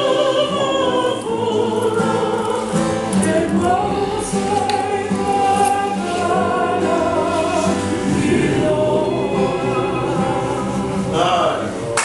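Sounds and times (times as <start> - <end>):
group of voices singing: 0.0 - 12.0.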